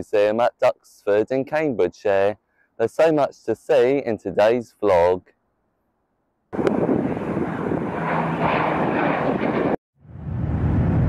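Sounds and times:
aircraft engine drone: 0:06.6 - 0:11.0.

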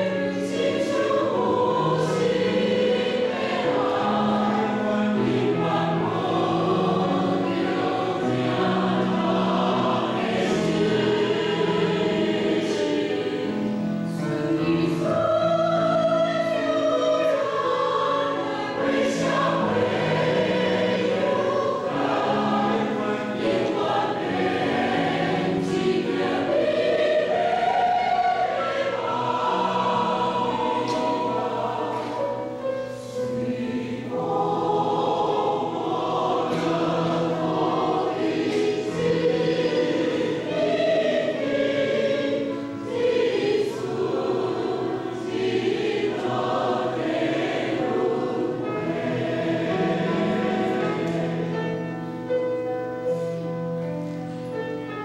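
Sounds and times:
mixed choir singing: 0:00.0 - 0:53.6.

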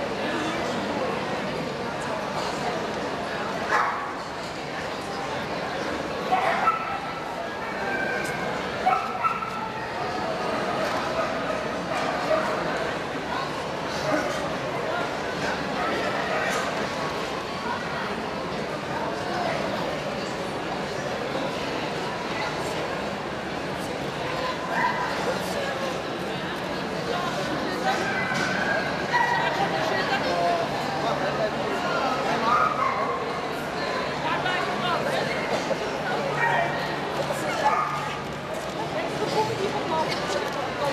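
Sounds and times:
crowd chatter in a hall: 0:00.0 - 0:40.9
dog barking: 0:03.7 - 0:04.0.

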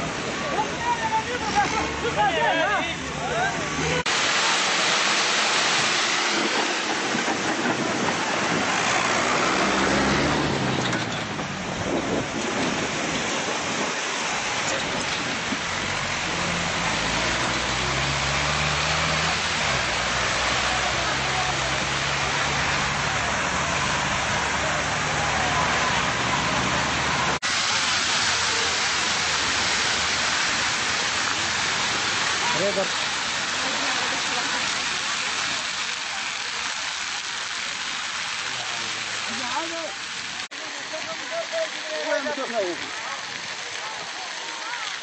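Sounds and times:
fire crackling hiss: 0:03.0 - 0:45.0.

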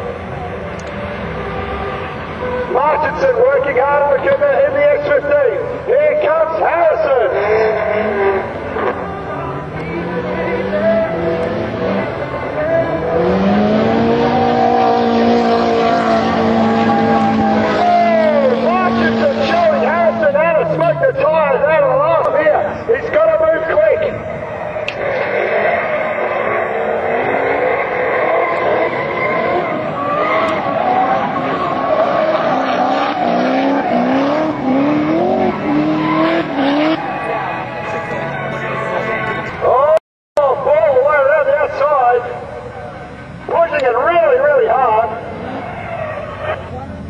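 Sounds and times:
car engines revving hard: 0:00.0 - 0:40.0, 0:41.7 - 0:47.0.

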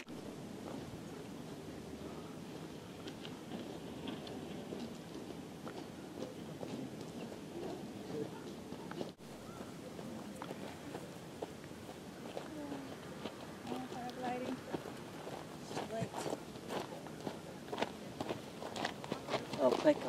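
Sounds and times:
quiet voices talking: 0:05.8 - 0:20.0.

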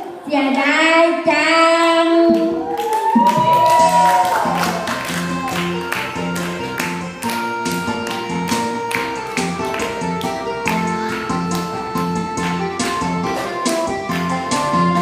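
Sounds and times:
woman singing through loudspeaker: 0:00.0 - 0:02.6
people clapping along: 0:02.3 - 0:15.0
electronic keyboard music with beat: 0:03.5 - 0:15.0.

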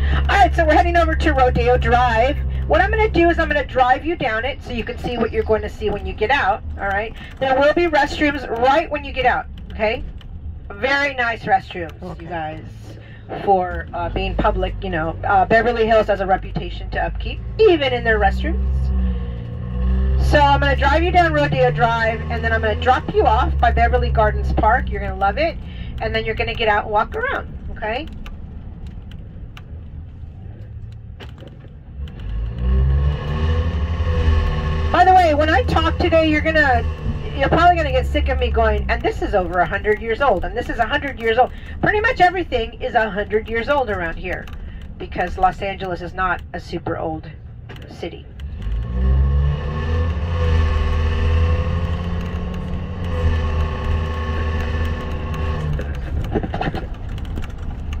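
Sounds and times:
light rattles and clicks: 0:00.0 - 0:18.2, 0:20.4 - 0:32.7, 0:35.0 - 0:47.0, 0:51.2 - 0:58.0
bus engine accelerating: 0:00.0 - 0:58.0
knocks and rattles: 0:51.2 - 0:58.0.

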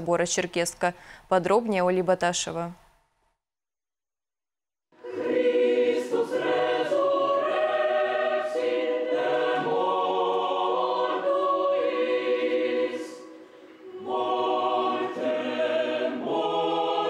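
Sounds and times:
mixed choir singing unaccompanied: 0:05.0 - 0:17.0.

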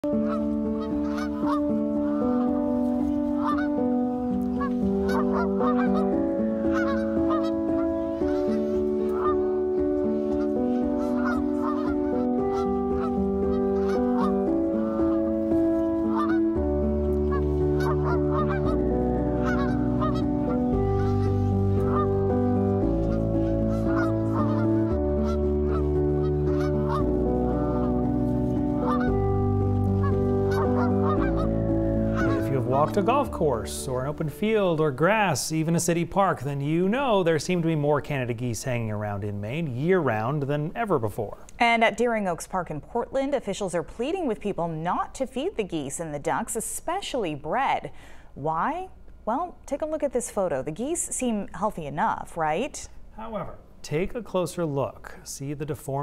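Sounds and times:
music with sustained chords: 0:00.0 - 0:40.5
geese honking: 0:00.0 - 0:41.0
bass line: 0:16.6 - 0:34.1.

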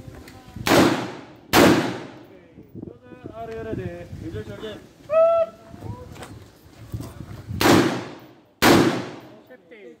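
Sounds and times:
rifle shots: 0:00.7 - 0:02.2, 0:07.6 - 0:09.4.

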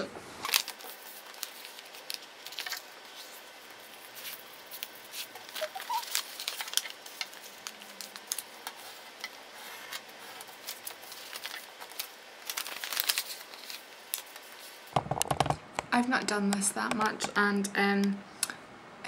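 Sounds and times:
paper rustling and crinkling: 0:00.0 - 0:15.0.

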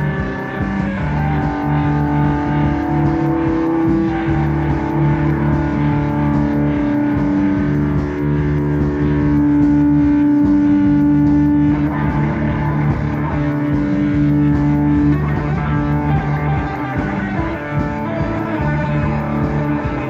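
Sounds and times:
indie pop band playing live: 0:00.0 - 0:20.0.

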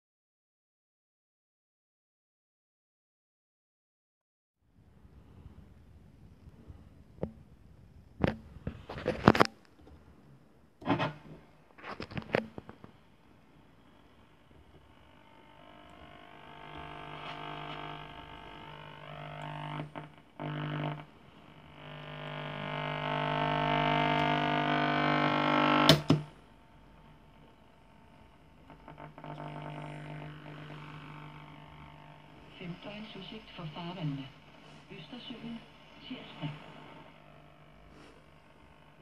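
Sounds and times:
radio buzzing hum: 0:08.2 - 0:09.6, 0:10.8 - 0:39.0
radio tuning whistling tones: 0:28.6 - 0:39.0.

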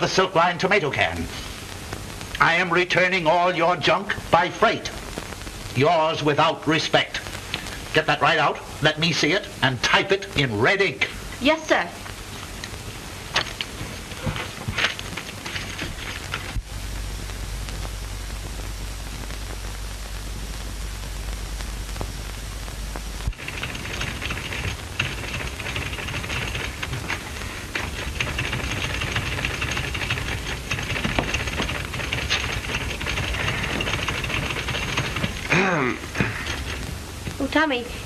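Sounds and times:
film soundtrack hiss and hum: 0:00.0 - 0:38.0
typewriter keys clacking: 0:23.4 - 0:27.2, 0:27.8 - 0:35.5.

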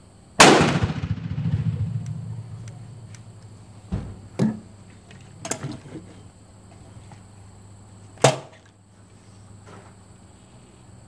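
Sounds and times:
sharp gunshot crack: 0:00.4 - 0:03.4.

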